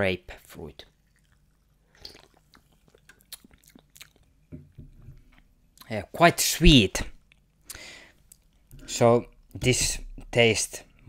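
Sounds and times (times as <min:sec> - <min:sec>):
person sipping and swallowing: 0:01.1 - 0:04.2.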